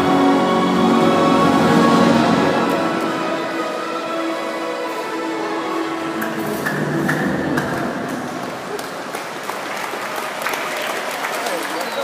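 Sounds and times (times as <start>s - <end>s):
audience applause: 7.2s - 12.0s.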